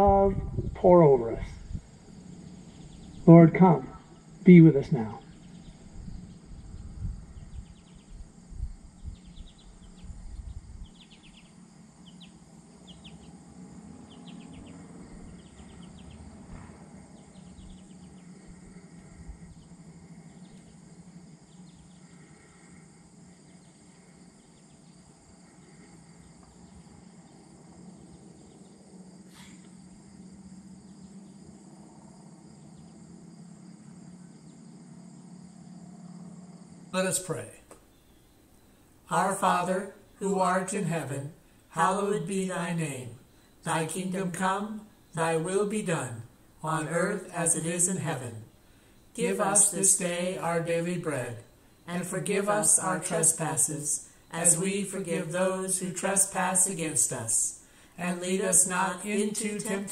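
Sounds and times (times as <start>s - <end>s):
wind buffeting microphone: 0.0s - 3.2s, 5.4s - 11.1s
insects chirping in bursts: 0.0s - 59.9s
steady low hum: 0.0s - 59.9s.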